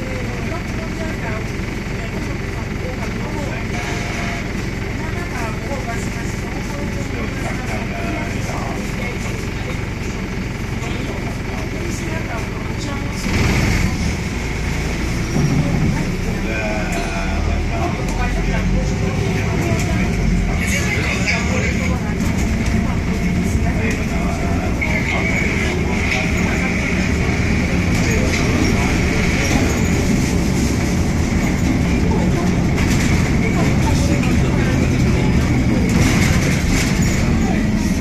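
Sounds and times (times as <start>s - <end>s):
bus diesel engine: 0.0s - 38.0s
faint passenger voices: 0.0s - 38.0s.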